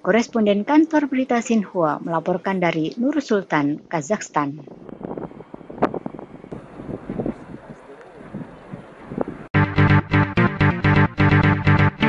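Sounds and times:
wind buffeting microphone: 0:04.3 - 0:09.6.

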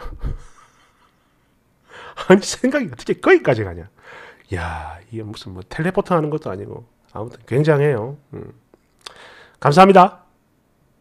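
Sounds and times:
man speaking: 0:02.2 - 0:03.9, 0:04.5 - 0:08.6, 0:09.6 - 0:10.3
man breathing into microphone: 0:09.1 - 0:09.6.

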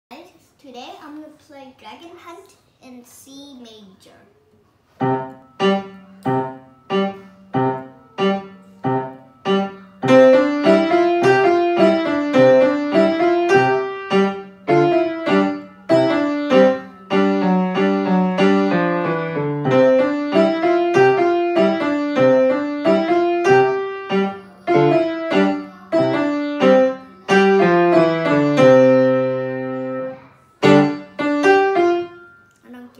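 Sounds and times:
grand piano piece: 0:05.0 - 0:32.5.

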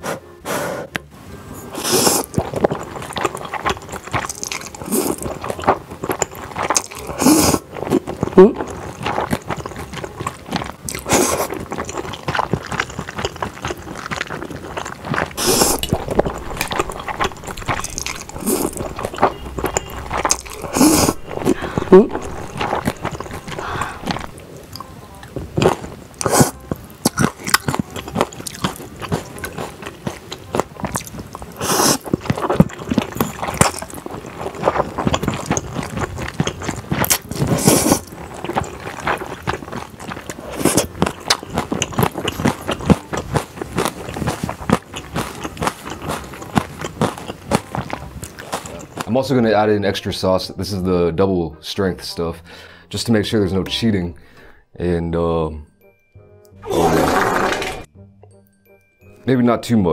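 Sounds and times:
noodles slurping: 0:01.7 - 0:24.4, 0:25.6 - 0:49.1
chewing and mouth sounds: 0:01.7 - 0:49.2.

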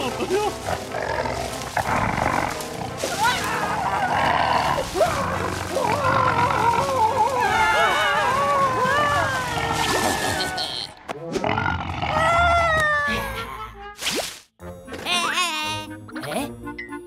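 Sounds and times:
background music: 0:00.0 - 0:17.0
cartoon character voices: 0:15.0 - 0:16.6.

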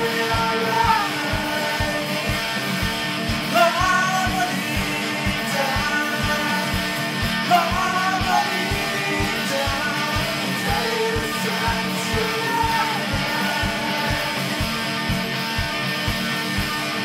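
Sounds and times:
rock song with guitars: 0:00.0 - 0:17.0.

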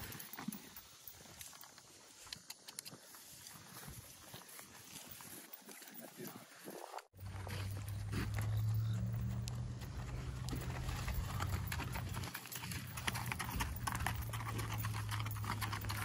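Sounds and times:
hooves stepping on gravel: 0:00.0 - 0:16.0.

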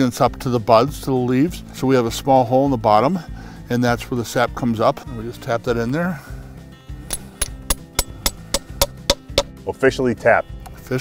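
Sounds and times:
hammer tapping metal spile: 0:07.1 - 0:09.6.

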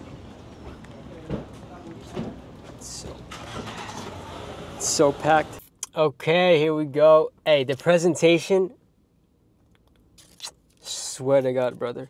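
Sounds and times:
paper wrapper tearing and rustling: 0:10.2 - 0:10.6.

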